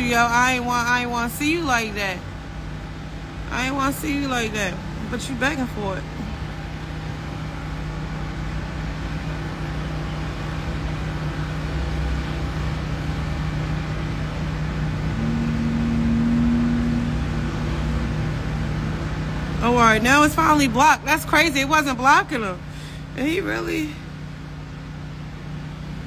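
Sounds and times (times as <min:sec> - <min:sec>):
higher mechanical hum: 0:00.0 - 0:26.0
low mechanical hum and rumble: 0:00.0 - 0:26.0.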